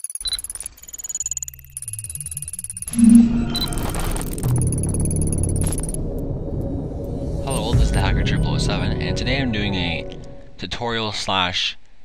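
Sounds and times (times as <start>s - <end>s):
high digital blips: 2.6s - 6.0s
short high beep: 2.9s - 5.5s
low electronic hum: 2.9s - 10.4s.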